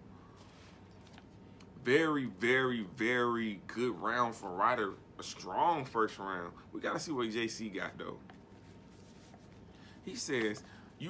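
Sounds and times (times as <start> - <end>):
scratchy handling noise: 8.2 - 10.7
person speaking: 9.0 - 11.0.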